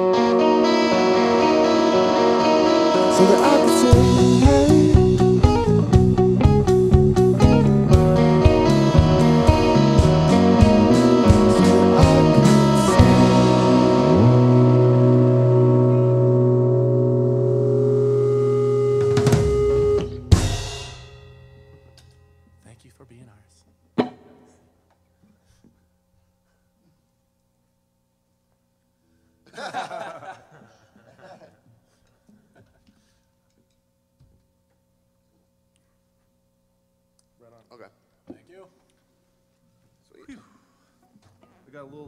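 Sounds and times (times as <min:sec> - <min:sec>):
electric guitars and bass chord: 0:00.0 - 0:22.9
drum strokes: 0:03.9 - 0:14.2, 0:18.7 - 0:22.1
drum and cymbal hit: 0:19.0 - 0:22.1
faint electrical hum: 0:21.7 - 0:42.0.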